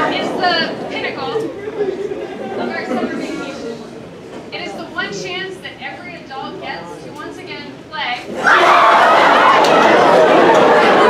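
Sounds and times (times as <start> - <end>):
crowd of teenagers chattering: 0.0 - 11.0.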